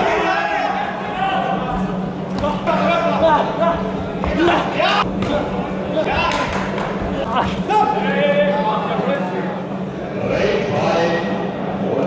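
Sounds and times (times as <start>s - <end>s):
voices shouting in echoing hall: 0.0s - 12.0s.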